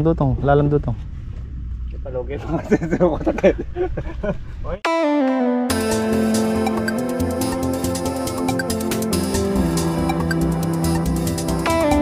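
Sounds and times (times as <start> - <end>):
low background rumble: 0.0 - 4.8.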